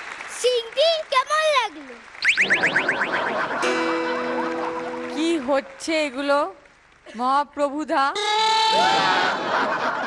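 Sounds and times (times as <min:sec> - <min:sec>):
rising electronic chirps: 0:02.2 - 0:05.3
held synth chord: 0:02.5 - 0:05.8.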